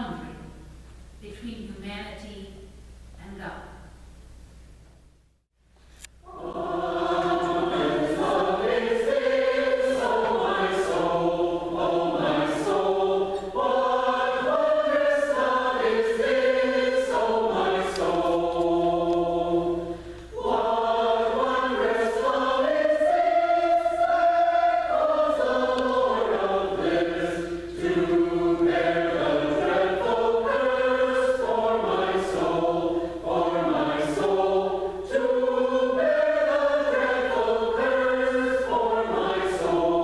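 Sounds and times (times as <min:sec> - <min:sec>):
mixed choir singing: 0:06.2 - 0:40.0.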